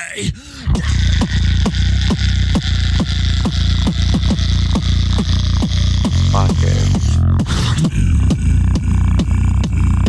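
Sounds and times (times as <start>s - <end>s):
vocal beatbox bass and kicks: 0.0s - 10.0s.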